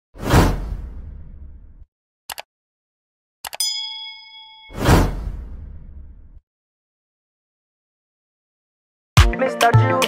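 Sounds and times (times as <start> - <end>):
whoosh: 4.7 - 6.4.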